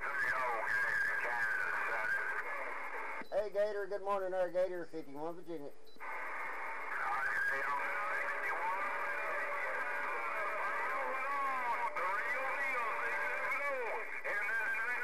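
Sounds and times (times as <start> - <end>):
warbling voice over radio speaker: 0.0 - 3.2, 6.1 - 15.0
steady radio whistle: 0.0 - 3.7, 4.8 - 15.0.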